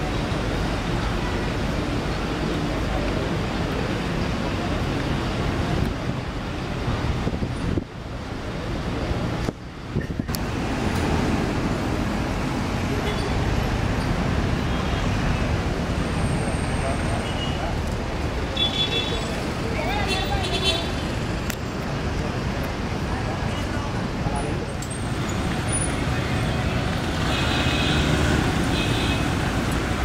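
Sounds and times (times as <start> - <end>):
people's voices: 0.0 - 30.0
road traffic noise: 0.0 - 30.0.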